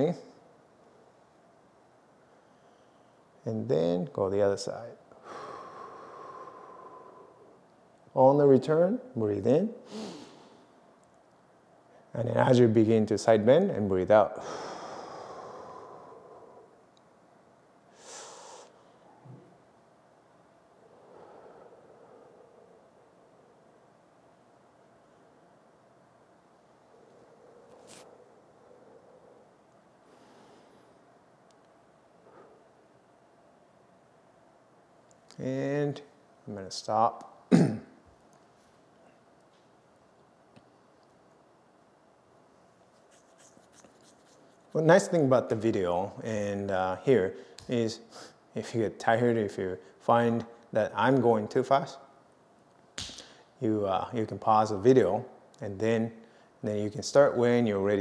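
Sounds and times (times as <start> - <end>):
man breathing slowly: 5.1 - 7.6, 14.4 - 16.9, 17.9 - 19.5, 20.7 - 23.8, 26.8 - 31.1.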